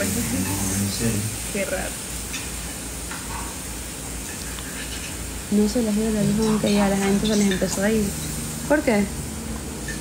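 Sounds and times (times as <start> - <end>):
background hiss: 0.0 - 7.2.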